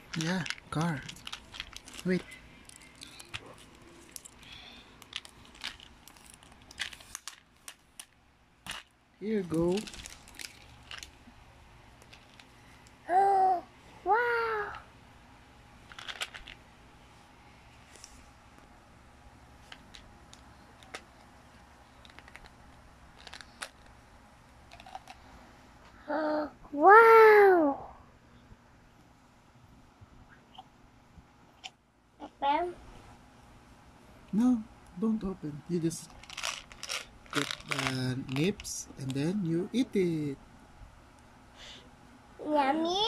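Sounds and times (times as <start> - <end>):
plastic wrapping crinkling: 0.0 - 11.3, 12.0 - 13.0, 15.8 - 16.6, 21.9 - 24.0, 35.7 - 40.1
person speaking word: 0.2 - 1.1, 2.0 - 2.3, 9.2 - 10.0, 34.3 - 36.1, 37.4 - 40.4
plastic parts clicking and tapping: 22.0 - 22.6.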